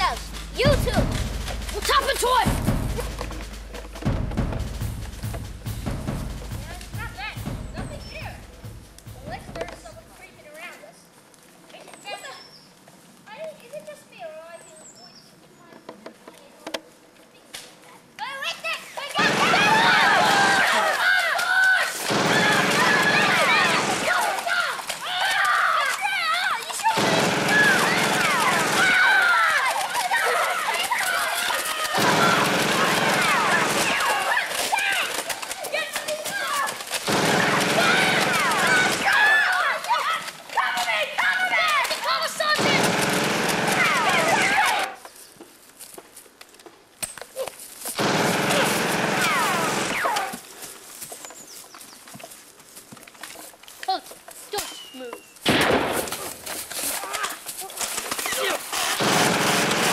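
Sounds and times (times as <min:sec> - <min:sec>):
people shouting: 0:00.0 - 0:03.2, 0:19.0 - 0:45.0, 0:48.1 - 0:50.4, 0:56.0 - 0:59.9
rapid gunfire sound effects: 0:00.0 - 0:10.1, 0:19.2 - 0:21.0, 0:22.0 - 0:25.0, 0:26.8 - 0:39.8, 0:42.4 - 0:44.9, 0:48.0 - 0:50.4, 0:55.5 - 0:56.6, 0:58.2 - 0:59.9.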